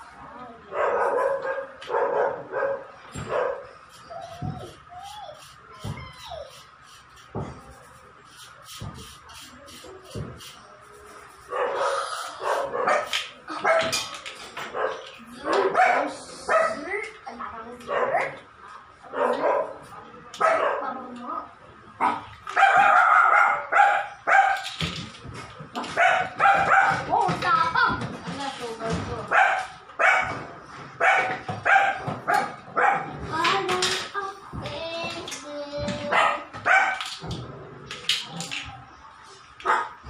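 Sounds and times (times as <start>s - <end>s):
dog barking and yelping: 22.0s - 24.6s, 25.9s - 27.1s, 31.0s - 33.2s, 36.1s - 37.0s.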